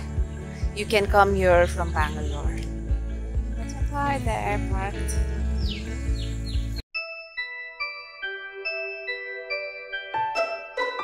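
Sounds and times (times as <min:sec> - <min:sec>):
instrumental background music: 0:00.0 - 0:11.0.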